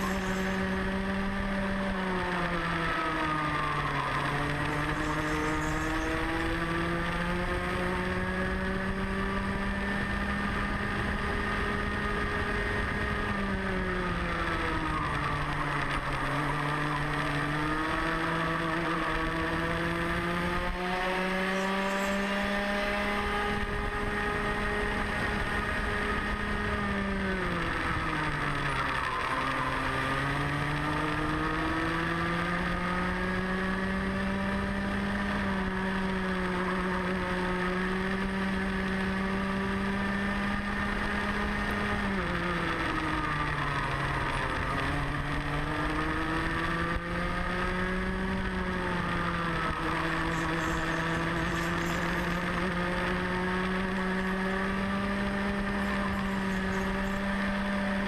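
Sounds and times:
kart engine at racing speed: 0.0 - 58.0.

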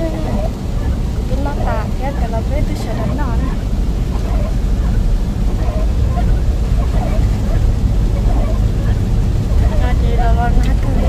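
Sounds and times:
car driving on wet road: 0.0 - 11.0.

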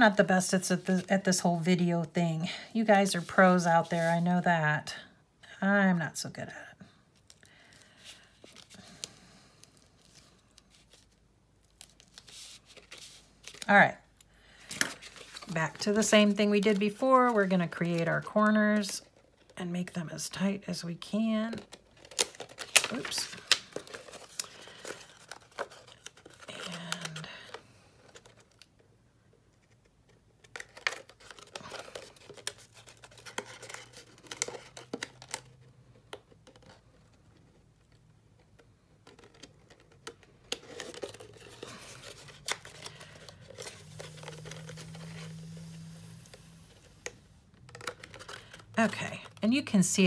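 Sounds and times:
paper crinkling and rustling: 7.2 - 13.8, 14.5 - 19.6, 21.2 - 28.8, 29.5 - 50.0.

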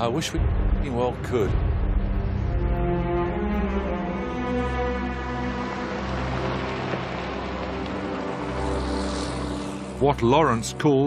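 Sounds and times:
vehicle engines humming: 2.2 - 10.2.

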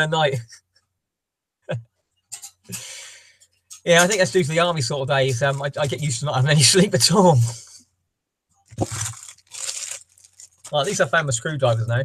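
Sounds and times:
rummaging on a desk: 8.7 - 10.8.

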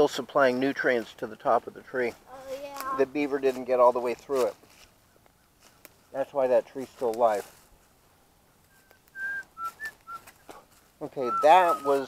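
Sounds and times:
short whistled notes: 8.7 - 10.5.

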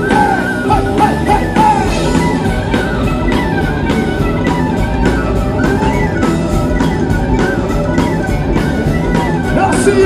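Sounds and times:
bass guitar: 0.0 - 10.0
drum-kit beat: 0.0 - 10.0
electric guitar: 0.0 - 10.0
bowed fiddle melody: 0.5 - 10.0.

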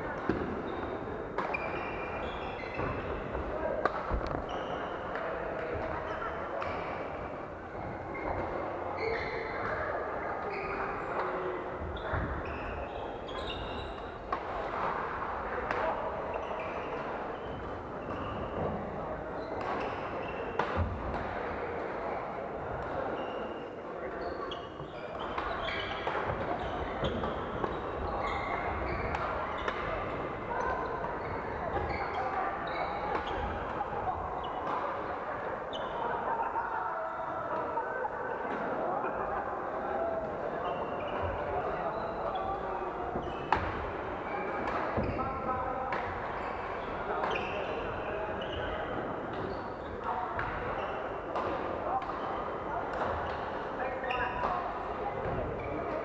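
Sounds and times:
murmur of voices: 0.0 - 56.0.

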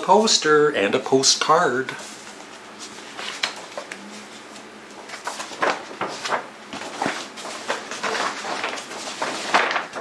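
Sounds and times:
paper rustling and crackling: 2.0 - 10.0.

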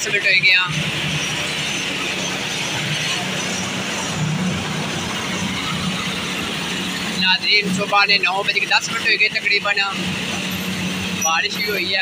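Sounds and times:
diesel engine humming: 0.0 - 12.0.

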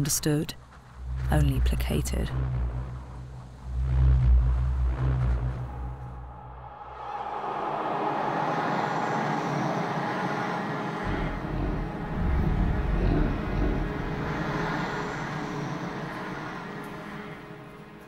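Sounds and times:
deep rumble: 0.5 - 17.8
faint sustained tones: 0.6 - 18.0
wind-like rushing drone: 0.6 - 18.0.

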